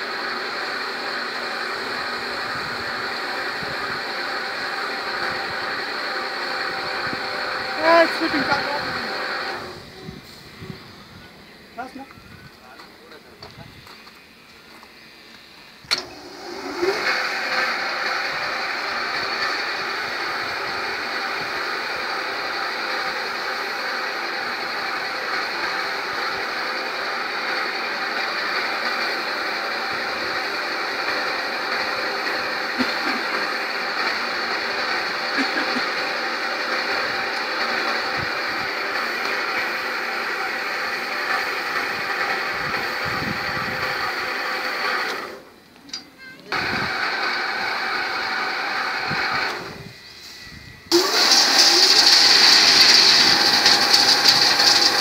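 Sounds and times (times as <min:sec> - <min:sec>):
machinery hum and rattle: 0:00.0 - 0:55.0.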